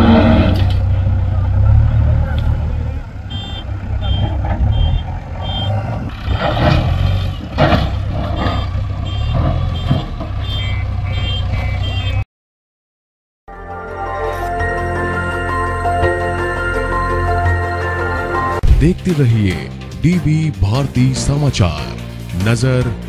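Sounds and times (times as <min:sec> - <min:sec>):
diesel engine rumbling: 0:00.0 - 0:12.2, 0:14.5 - 0:23.0
reversing alarm beeping: 0:03.3 - 0:05.9, 0:08.3 - 0:12.2.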